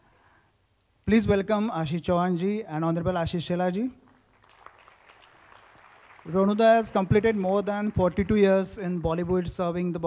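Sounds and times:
faint audience applause: 4.1 - 9.8.

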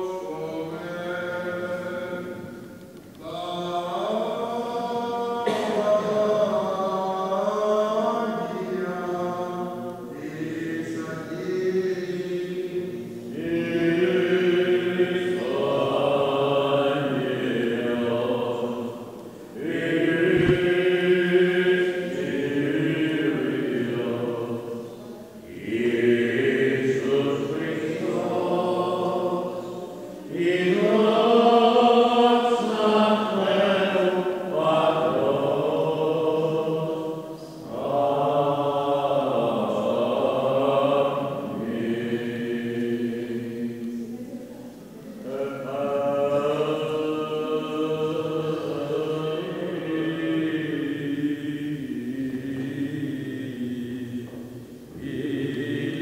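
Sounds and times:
men chanting: 3.2 - 43.9, 45.1 - 54.3.

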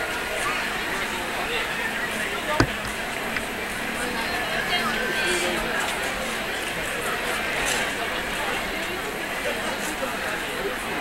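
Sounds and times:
sharp knock: 2.6 - 3.0.

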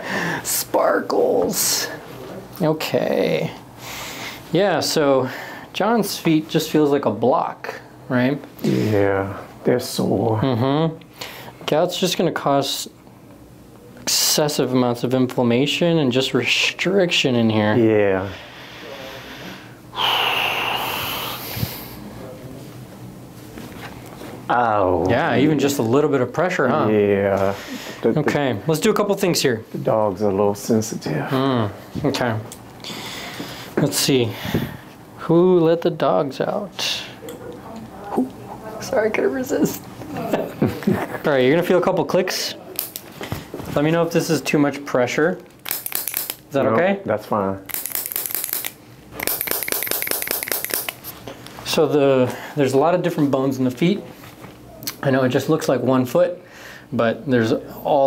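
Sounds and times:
person hissing breath in pain: 18.6 - 22.0.

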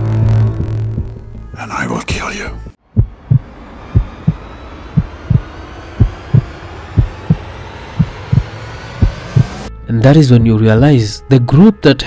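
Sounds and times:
heartbeat: 0.2 - 1.3, 2.9 - 9.7.

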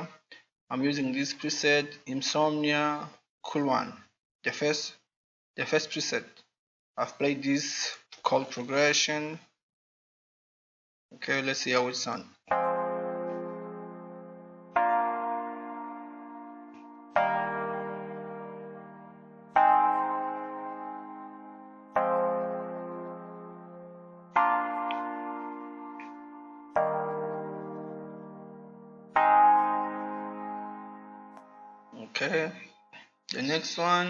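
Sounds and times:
sustained synth chord: 12.6 - 32.0.

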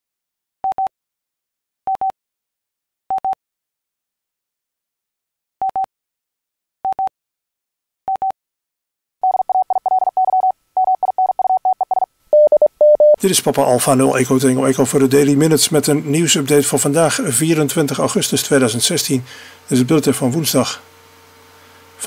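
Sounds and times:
morse code beeps: 1.9 - 2.1, 3.1 - 3.4, 6.9 - 7.1, 8.1 - 8.4, 9.2 - 13.2.

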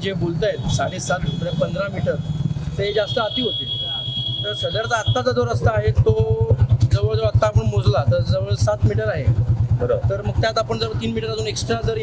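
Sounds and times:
man speaking: 0.0 - 12.0
vehicle engine idling: 0.0 - 12.0.

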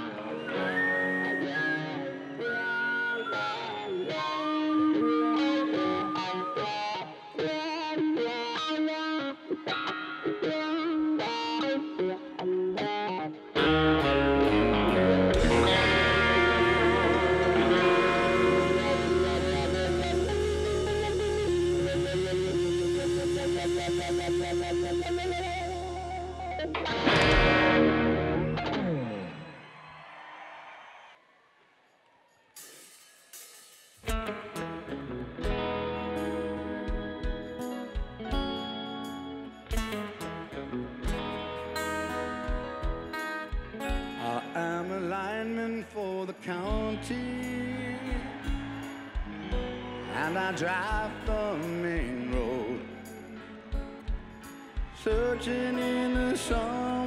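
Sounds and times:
rock band playing: 0.0 - 29.5, 33.4 - 45.3, 46.6 - 57.0
electric guitar melodic run: 0.0 - 29.6, 34.1 - 57.0.

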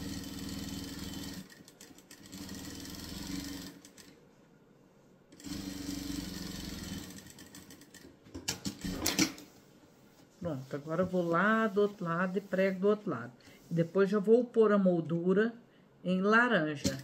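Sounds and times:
sewing machine stitching: 0.0 - 4.1, 5.4 - 8.0, 8.6 - 9.4.

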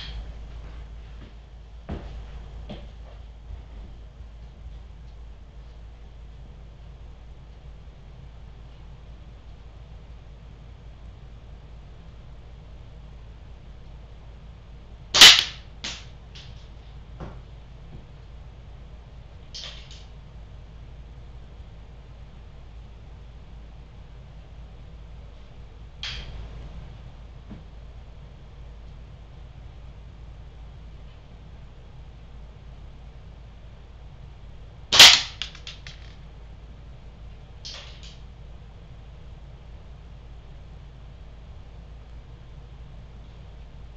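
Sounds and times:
air gun shot: 15.2 - 16.0, 19.6 - 20.0, 34.9 - 35.7, 37.7 - 38.1.

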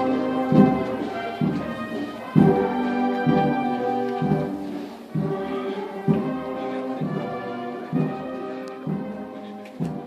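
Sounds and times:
slow band music: 0.0 - 10.0.

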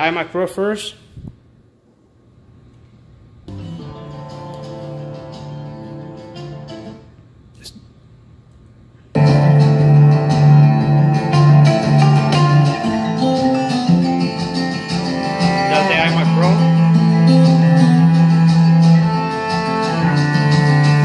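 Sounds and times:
loud instrumental music: 9.2 - 21.0.

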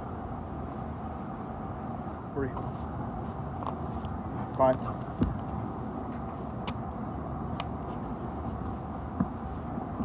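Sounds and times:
city traffic hum: 0.0 - 10.0.

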